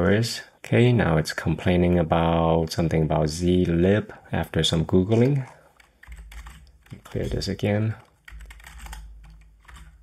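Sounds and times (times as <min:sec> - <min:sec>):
computer keyboard typing: 0:05.2 - 0:10.0.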